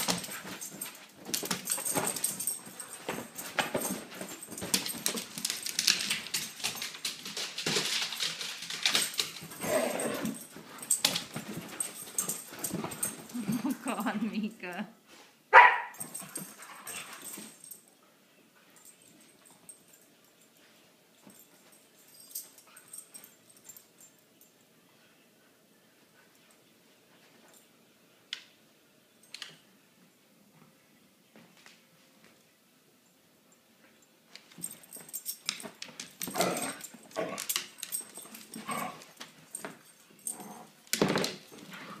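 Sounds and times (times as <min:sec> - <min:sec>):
dogs scuffling on couch: 0:00.0 - 0:14.1, 0:34.4 - 0:42.0
paws scratching and clicking: 0:34.4 - 0:40.7.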